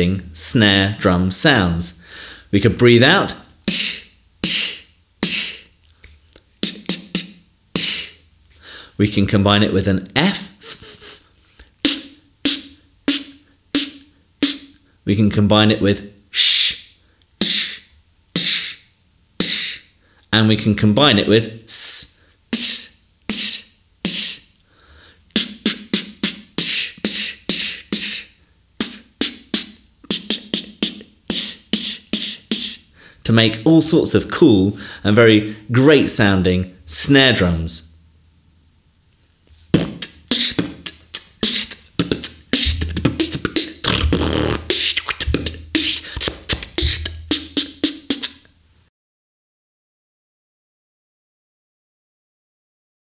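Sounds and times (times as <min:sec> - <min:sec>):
beatboxed hissing snare: 0:03.6 - 0:08.8, 0:10.3 - 0:14.9, 0:16.3 - 0:20.0, 0:21.7 - 0:24.6, 0:25.2 - 0:32.9, 0:39.6 - 0:48.5.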